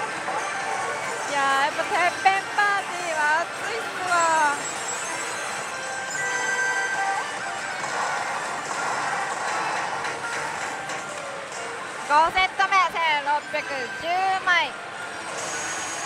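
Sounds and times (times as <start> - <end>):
slot machine electronic music: 0.0 - 16.0.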